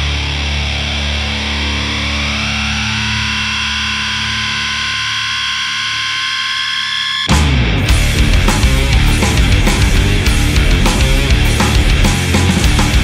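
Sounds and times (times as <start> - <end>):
distorted guitars: 0.0 - 13.0
drums: 0.0 - 13.0
heavy rock music: 0.0 - 13.0.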